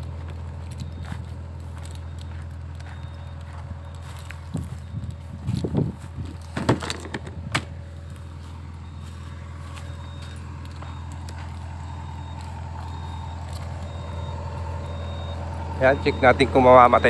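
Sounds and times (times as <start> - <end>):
excavator diesel engine idling: 0.0 - 17.0.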